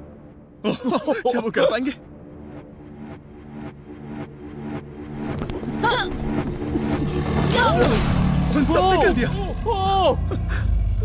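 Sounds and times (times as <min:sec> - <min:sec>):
pulsing suspense music: 0:00.0 - 0:11.0
low drone: 0:02.0 - 0:11.0.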